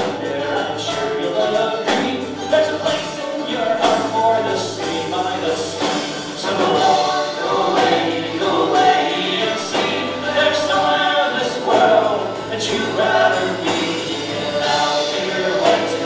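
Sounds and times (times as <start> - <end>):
accordion: 0.0 - 16.0
acoustic guitars: 0.0 - 16.0
voices singing together: 0.0 - 16.0.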